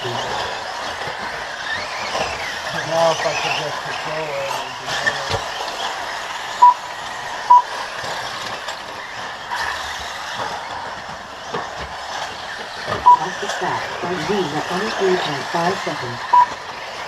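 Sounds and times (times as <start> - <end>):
radio-controlled buggies racing: 0.0 - 17.0
short electronic beeps: 6.6 - 6.8, 7.5 - 7.7, 13.0 - 13.4, 16.3 - 16.5.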